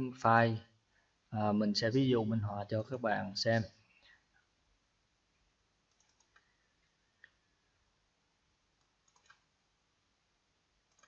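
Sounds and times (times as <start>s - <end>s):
computer mouse clicks: 5.9s - 7.4s, 8.8s - 9.5s.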